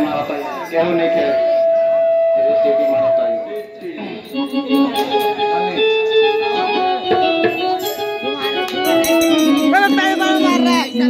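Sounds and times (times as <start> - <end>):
electronic keyboard melody: 0.0 - 11.0
hand drumming: 7.0 - 11.0.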